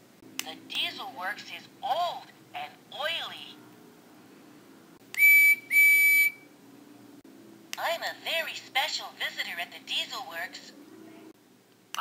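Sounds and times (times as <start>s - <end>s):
toy steam whistle toots: 5.1s - 6.5s.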